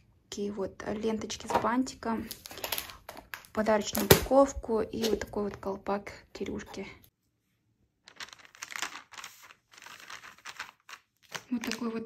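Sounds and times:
plastic bag crinkling: 0:02.2 - 0:04.2, 0:08.0 - 0:12.0.

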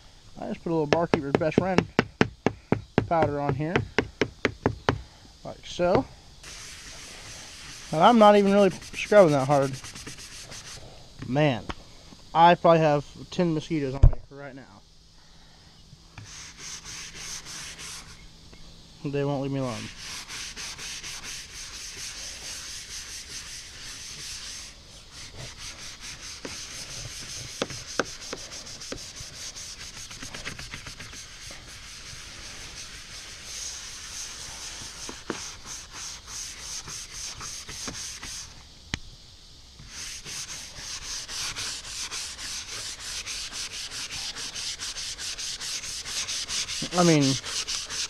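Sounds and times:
brush scrubbing boat deck: 0:06.4 - 0:10.8, 0:16.2 - 0:18.2, 0:19.6 - 0:38.5, 0:39.8 - 0:48.0.

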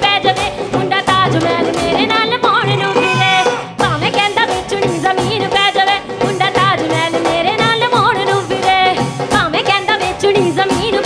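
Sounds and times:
band with steady drum beat: 0:00.0 - 0:11.0.

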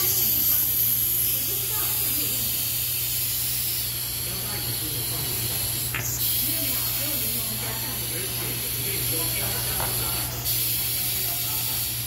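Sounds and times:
compressed air hiss: 0:00.0 - 0:12.0.

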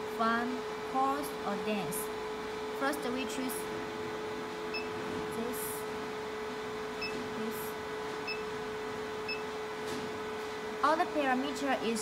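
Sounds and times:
machine hum with fan noise: 0:00.0 - 0:12.0.

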